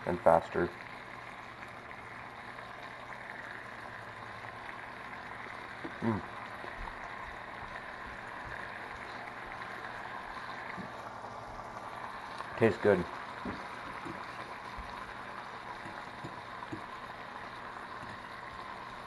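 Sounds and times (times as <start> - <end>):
fish sizzling in a frying pan: 0.0 - 19.0.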